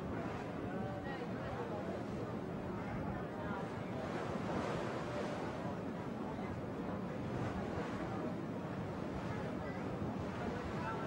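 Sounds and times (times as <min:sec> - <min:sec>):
harbour water: 0:00.0 - 0:11.0.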